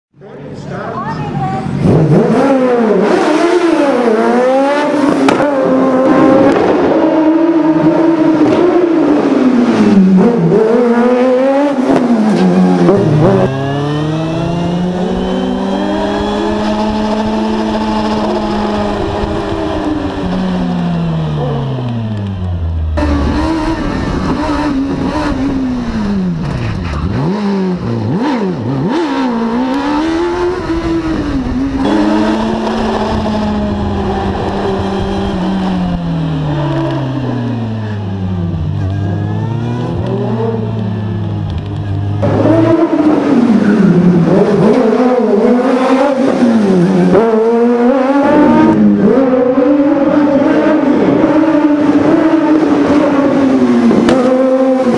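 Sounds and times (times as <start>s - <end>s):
race car engine revving: 0.5s - 54.9s.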